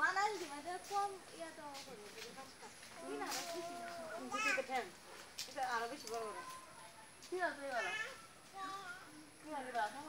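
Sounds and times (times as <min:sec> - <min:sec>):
children talking and calling out: 0:00.0 - 0:05.0, 0:06.1 - 0:10.0.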